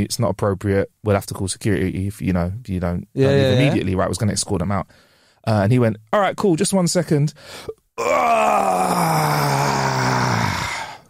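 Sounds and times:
man groaning moan: 3.2 - 3.8, 8.0 - 11.0.

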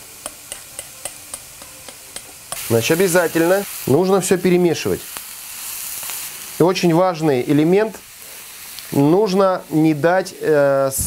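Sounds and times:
vegetables sizzling in a frying pan: 0.0 - 11.0.

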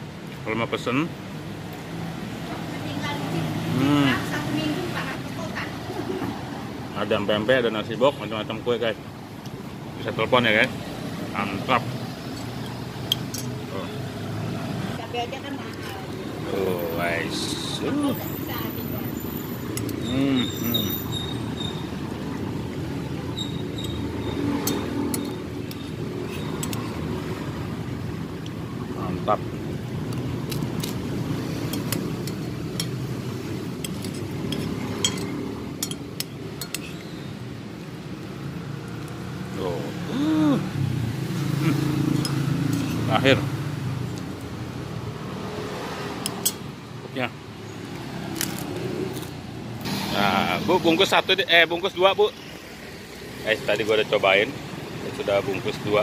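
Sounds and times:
roadside traffic noise: 0.0 - 56.0
indistinct voices: 19.8 - 21.8, 39.6 - 40.8.

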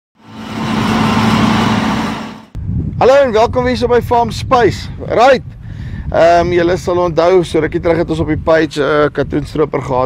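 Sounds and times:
harvester engine low hum: 0.2 - 2.6.

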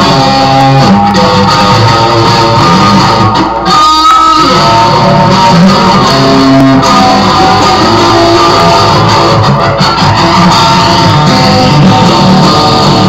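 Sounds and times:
electric guitar playing: 0.0 - 13.0.

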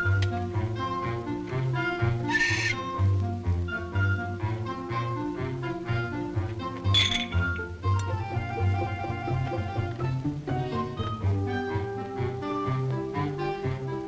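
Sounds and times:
orchestral film music: 0.0 - 14.0.

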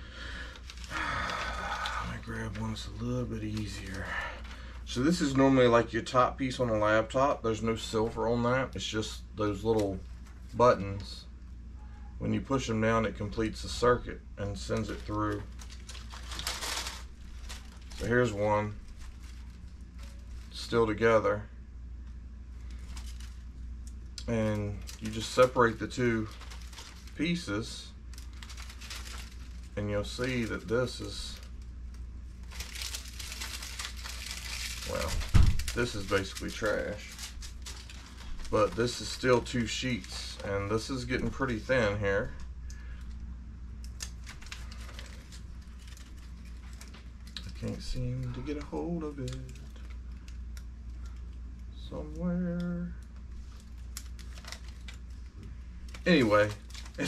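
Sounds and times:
low steady hum: 0.0 - 57.0
plastic sheets crinkling: 0.2 - 5.8, 14.5 - 21.0, 22.6 - 43.2, 43.8 - 51.6, 52.4 - 57.0.

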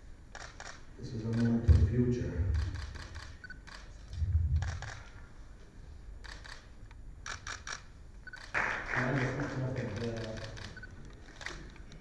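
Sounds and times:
camera shutters clicking: 0.3 - 1.8, 2.5 - 5.2, 6.2 - 8.6, 9.8 - 12.0
low rumble: 4.1 - 5.1.

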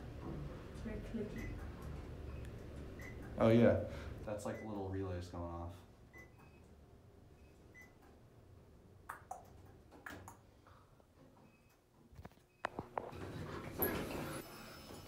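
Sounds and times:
elevator doors sliding open: 13.2 - 15.0.

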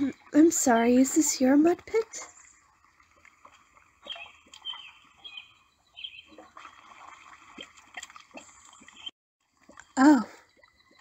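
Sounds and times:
mud sloshing and squelching: 0.0 - 11.0.

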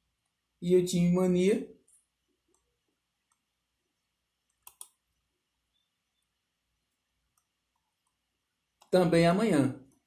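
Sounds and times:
computer mouse clicks: 2.4 - 3.5, 4.4 - 5.0, 7.3 - 8.2.

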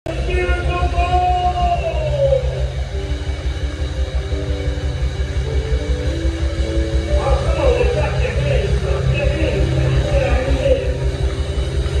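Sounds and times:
pulsing bass: 0.1 - 12.0.

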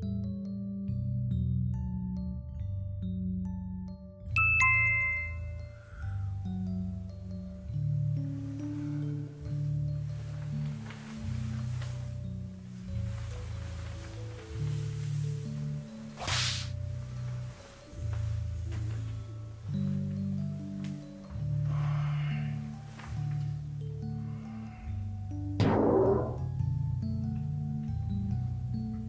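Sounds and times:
background music of low notes: 0.0 - 29.0
melody of struck ringing notes: 4.3 - 6.6
low held bass notes: 18.2 - 28.9.

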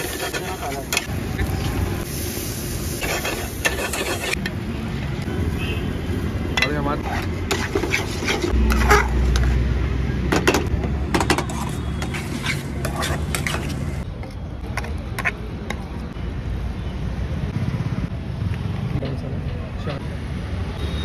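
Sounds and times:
metal spoon scraping a wok: 0.0 - 1.5, 2.9 - 4.6, 6.6 - 9.6, 11.2 - 14.0.

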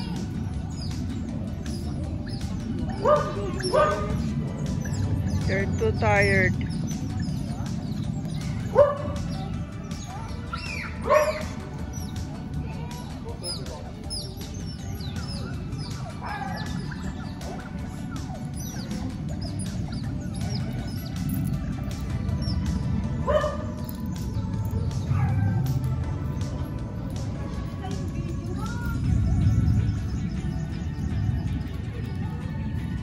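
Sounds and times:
otters chirping and squeaking: 0.0 - 33.0.

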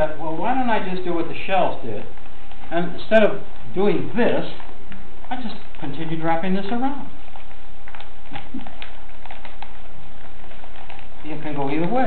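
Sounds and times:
background hiss and hum: 0.0 - 12.0
paper crinkling and rustling: 0.4 - 12.0.

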